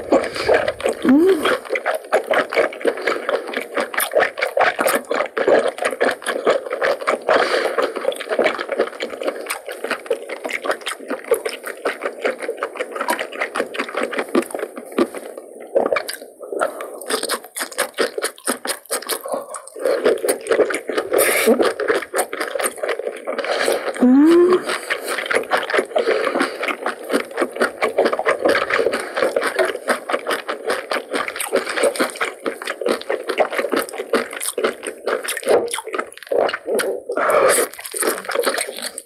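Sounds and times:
wet chewing mouth clicks: 0.0s - 39.0s.

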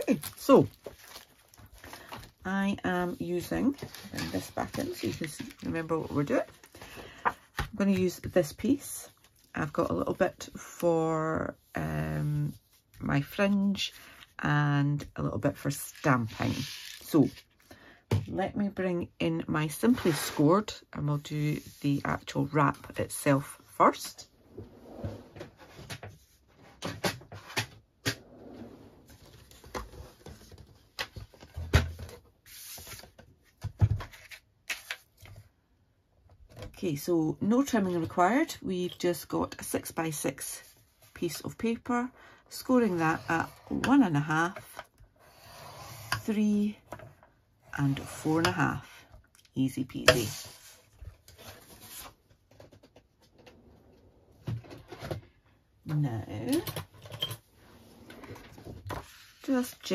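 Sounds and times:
paper rustling: 0.1s - 2.3s.

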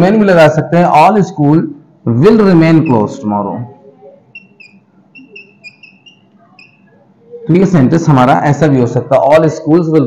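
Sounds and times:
chalk squeaking on chalkboard: 4.4s - 6.9s.

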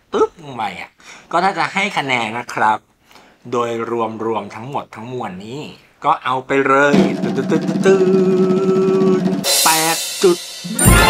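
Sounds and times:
drum roll: 6.9s - 11.0s
cymbal crash: 9.3s - 11.0s.

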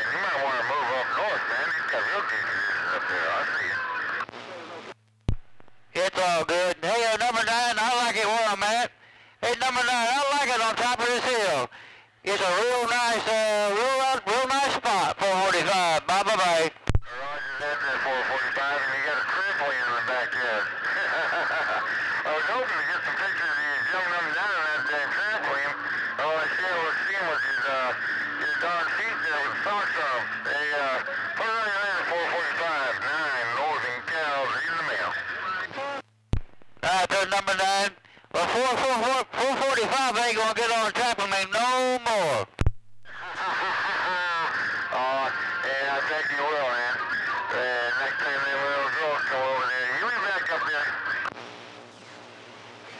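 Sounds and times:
garbled voices over radio: 0.0s - 5.0s, 5.9s - 11.7s, 12.3s - 36.0s, 36.8s - 51.4s
radio hiss: 0.0s - 52.9s
sharp radio clicks: 3.8s - 6.0s, 16.7s - 17.6s, 36.0s - 37.0s, 38.0s - 38.4s, 42.3s - 43.3s, 50.5s - 52.9s.

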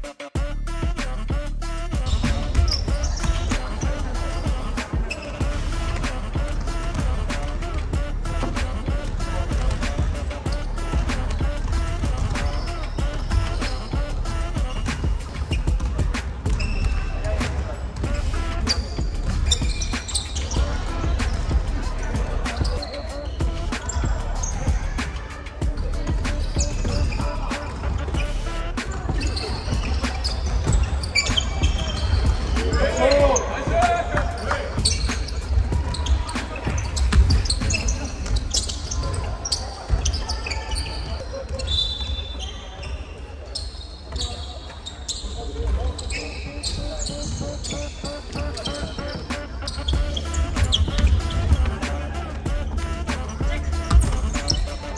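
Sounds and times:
players' voices: 0.0s - 54.9s
sneaker squeaks: 0.0s - 54.9s
basketball bouncing on floor: 36.8s - 38.4s, 53.9s - 54.8s.

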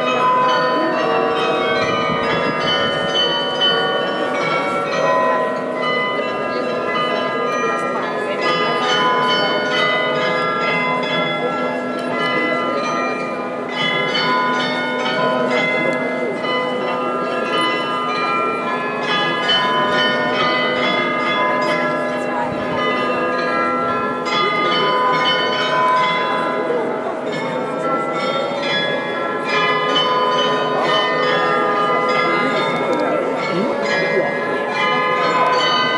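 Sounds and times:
glockenspiel bells playing a melody: 0.0s - 35.9s.

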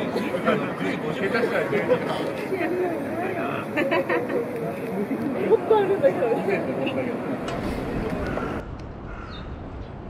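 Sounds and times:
low city rumble: 0.0s - 10.0s.

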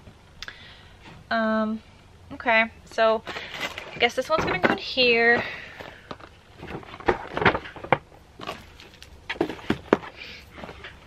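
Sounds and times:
boxes tapping: 3.7s - 10.9s.

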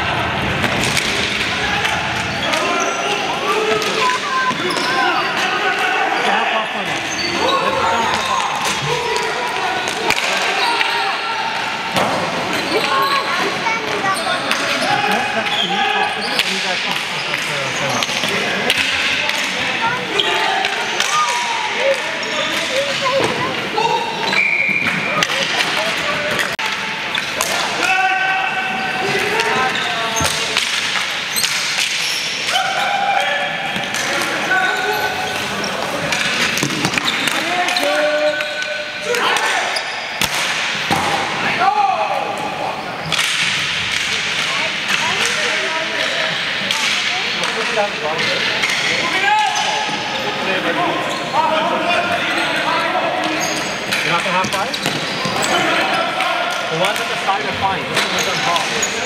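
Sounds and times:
players shouting: 0.0s - 16.6s, 17.8s - 43.5s
hockey sticks clacking: 0.5s - 5.9s, 6.9s - 28.0s, 29.0s - 41.1s, 42.4s - 50.1s, 52.2s - 59.0s.

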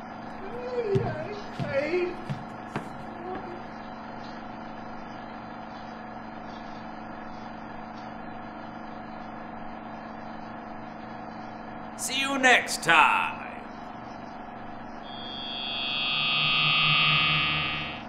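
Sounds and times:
steady hum: 10.8s - 18.0s.

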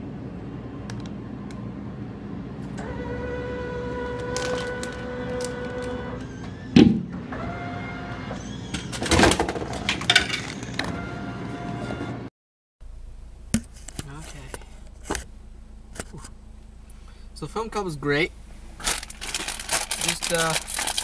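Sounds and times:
vending machine motor whining: 1.1s - 12.3s.

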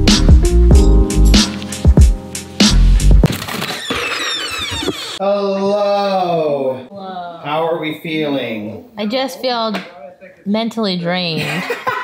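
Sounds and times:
thin high squeaks: 3.5s - 5.2s.

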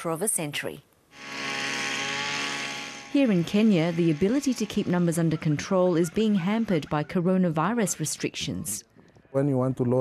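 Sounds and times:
small engine hum: 1.1s - 6.8s.

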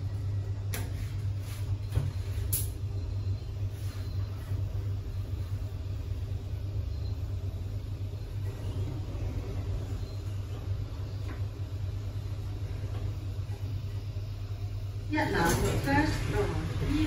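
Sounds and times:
lift hum and rumble: 0.0s - 17.0s.

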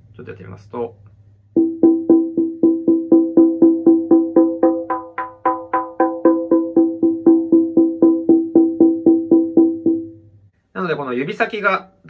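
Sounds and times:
mallet striking conga drum: 1.6s - 10.2s.

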